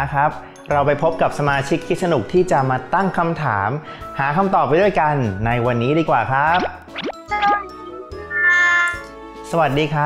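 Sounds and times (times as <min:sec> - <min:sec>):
children's background music: 0:00.0 - 0:10.0.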